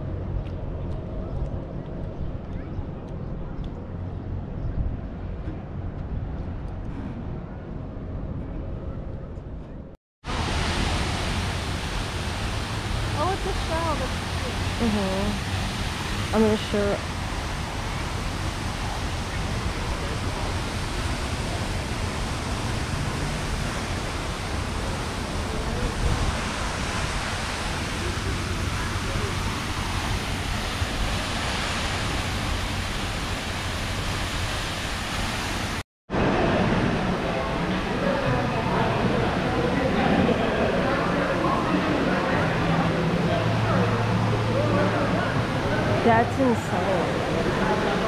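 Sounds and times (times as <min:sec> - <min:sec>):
fountain water splashing: 0:10.2 - 0:48.0
crowd chatter indoors: 0:36.2 - 0:48.0.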